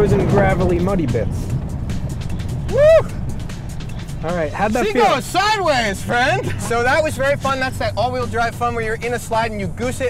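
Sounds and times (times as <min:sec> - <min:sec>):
background music: 0:00.0 - 0:10.0
car engine running hard: 0:00.0 - 0:10.0
vocal whoop: 0:02.7 - 0:03.2.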